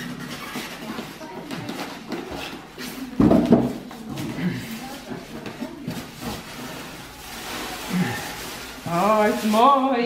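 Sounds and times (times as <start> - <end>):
plastic wrapping rustling: 0.0 - 10.0.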